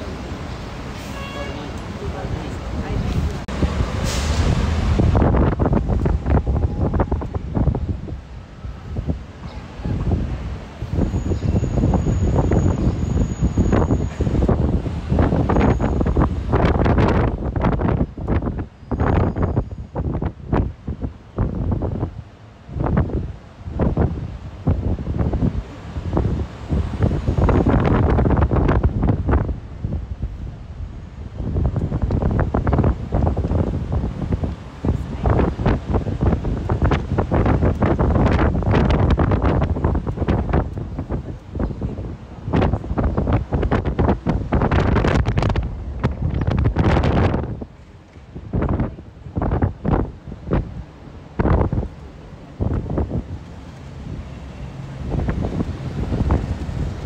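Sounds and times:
bus engine noise: 0:00.0 - 0:57.0
street traffic: 0:00.0 - 0:57.0
wind gusting over microphone: 0:00.0 - 0:57.0.

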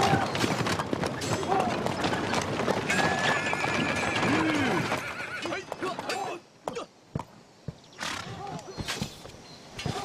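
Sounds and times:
people shouting: 0:00.0 - 0:00.4
horses neighing: 0:00.0 - 0:06.8, 0:07.9 - 0:09.2
hooves clattering: 0:00.0 - 0:10.0.

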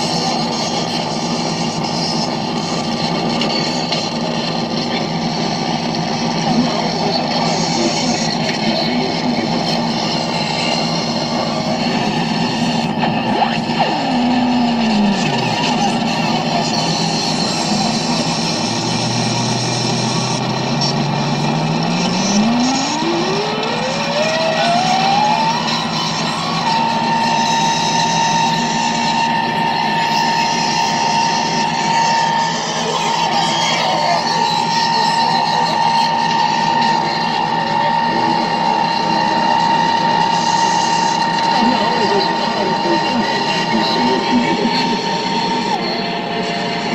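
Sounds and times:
loud electronic noise wall: 0:00.0 - 0:46.9
low tone sweeping up to whine: 0:00.0 - 0:46.9
tone sliding downward: 0:04.6 - 0:46.9.

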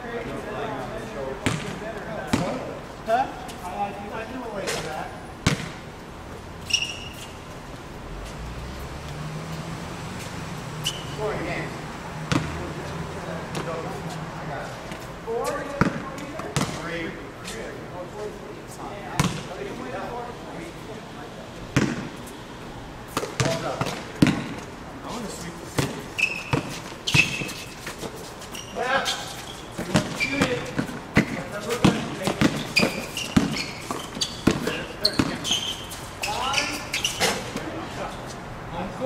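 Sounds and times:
men talking: 0:00.0 - 0:05.4, 0:10.1 - 0:26.2, 0:28.0 - 0:39.0
basketball bouncing on court: 0:01.4 - 0:02.6, 0:05.4 - 0:05.8, 0:12.2 - 0:12.6, 0:15.8 - 0:16.8, 0:19.2 - 0:19.5, 0:21.8 - 0:22.1, 0:23.2 - 0:24.6, 0:25.8 - 0:27.6, 0:29.8 - 0:35.9.

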